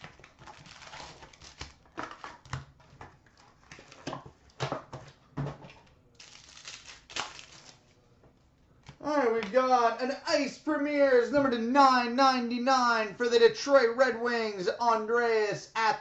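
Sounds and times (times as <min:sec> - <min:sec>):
plastic wrap crinkling: 0:00.0 - 0:04.1, 0:06.2 - 0:08.0.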